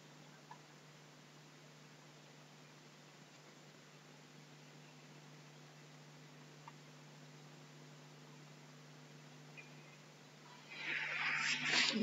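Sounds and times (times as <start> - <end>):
faint low room hum: 0.0 - 12.0
loud hissy sound: 10.5 - 12.0.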